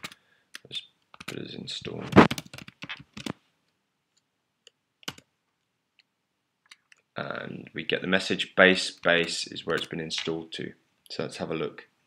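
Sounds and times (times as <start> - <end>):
computer keyboard typing: 2.1 - 3.4, 5.0 - 5.3, 9.2 - 10.3.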